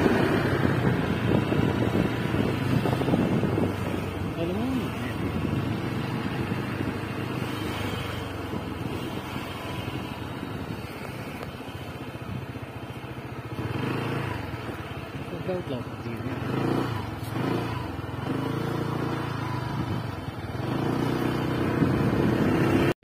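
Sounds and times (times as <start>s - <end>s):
motor scooter engine running: 0.0s - 22.9s.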